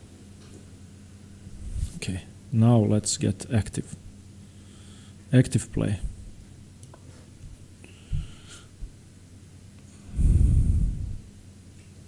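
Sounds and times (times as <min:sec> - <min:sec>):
man breathing out through nose: 0:04.5 - 0:05.2, 0:07.8 - 0:08.8, 0:10.0 - 0:11.2.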